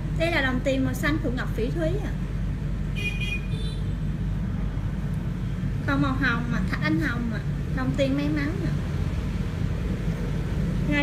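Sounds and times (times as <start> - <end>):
low background rumble: 4.0 - 11.0.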